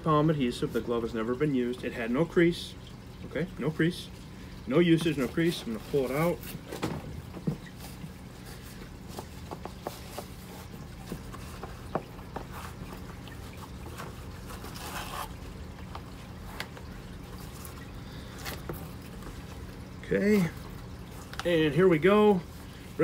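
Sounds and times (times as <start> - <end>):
steady low hum: 0.0 - 23.0
leather glove crackling and creaking: 13.9 - 16.8.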